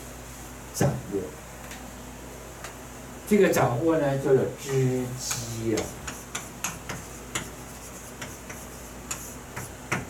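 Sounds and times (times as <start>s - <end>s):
chalk tapping on a chalkboard: 5.2s - 10.0s.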